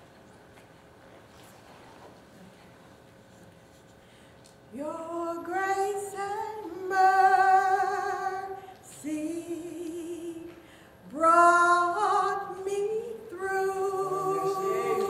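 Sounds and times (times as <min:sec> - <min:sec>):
women singing unaccompanied: 0:04.8 - 0:10.5, 0:11.1 - 0:15.0.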